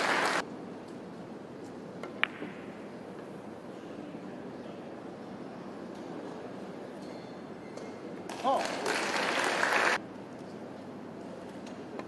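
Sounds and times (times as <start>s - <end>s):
audience applauding: 0.0s - 0.4s, 8.3s - 10.0s.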